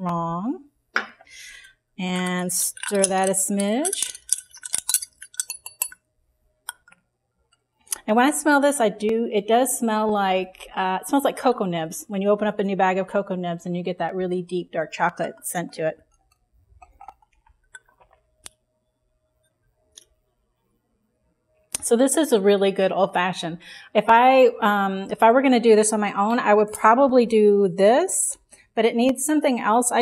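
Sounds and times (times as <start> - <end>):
metal spoon clinking against glass: 2.2 - 6.0, 6.7 - 7.0.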